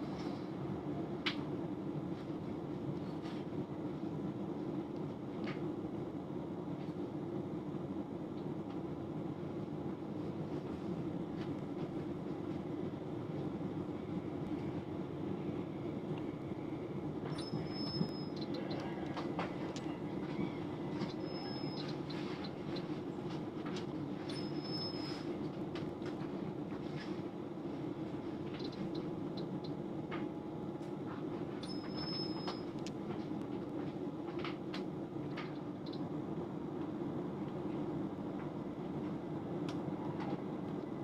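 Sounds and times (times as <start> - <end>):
train rumbling: 0.0 - 41.0
rail joint clicks: 17.2 - 26.4, 28.5 - 36.1
high-pitched wheel squeals: 17.3 - 19.1, 20.4 - 21.9, 24.3 - 25.2.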